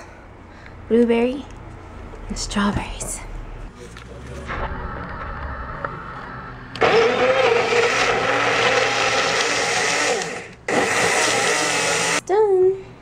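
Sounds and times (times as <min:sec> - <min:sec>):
blender motor running: 0:06.8 - 0:12.2.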